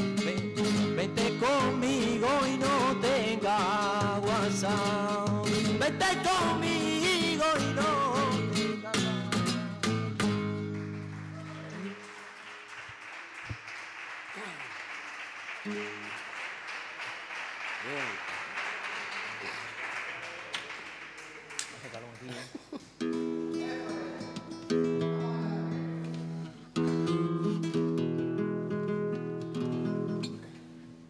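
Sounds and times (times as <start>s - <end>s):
strummed guitar: 0.0s - 12.0s, 23.0s - 31.0s
audience applause: 10.4s - 22.7s.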